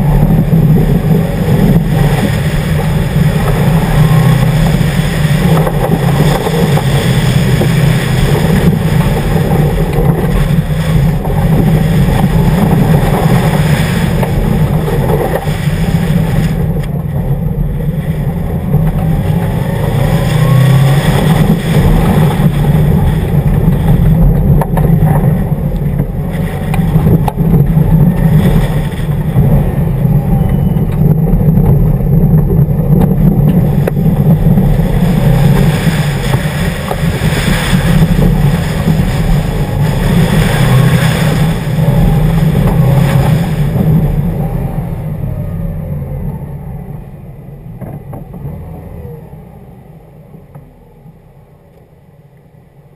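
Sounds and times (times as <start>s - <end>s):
rally car engine revving: 0.0s - 51.5s
tyres and road noise: 0.0s - 52.9s.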